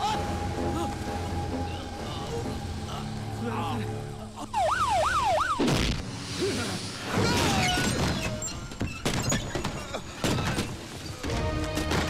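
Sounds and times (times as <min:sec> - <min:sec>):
low musical drone: 0:00.0 - 0:05.0
siren wailing: 0:04.4 - 0:05.7.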